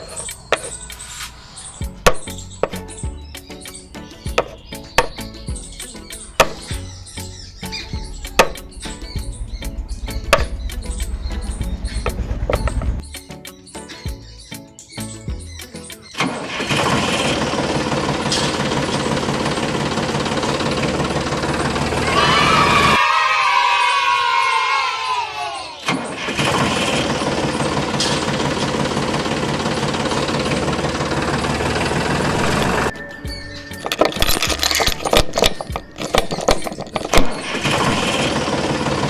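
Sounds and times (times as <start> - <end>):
tractor engine running: 0.0 - 13.1, 16.1 - 23.0, 25.9 - 39.0.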